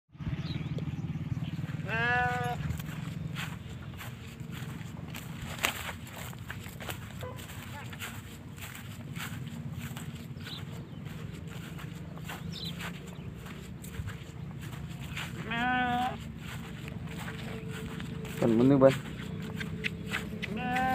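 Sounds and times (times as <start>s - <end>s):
calf calling: 1.6s - 4.8s, 14.7s - 18.4s, 19.3s - 20.9s.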